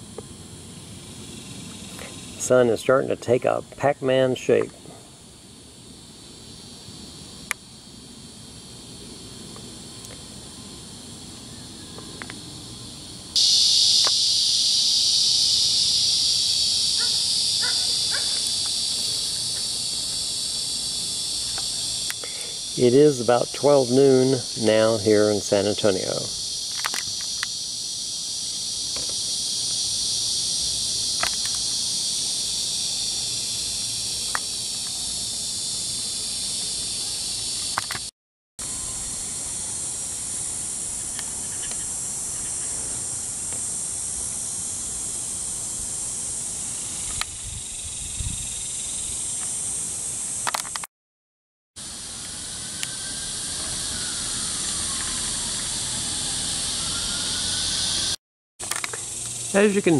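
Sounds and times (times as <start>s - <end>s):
insect chorus buzzing: 0.0s - 50.9s, 51.8s - 59.9s.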